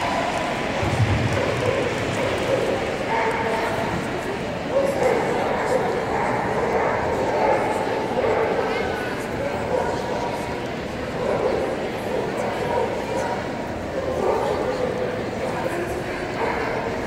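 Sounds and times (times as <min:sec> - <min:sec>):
voices in a large hall: 0:00.0 - 0:17.0.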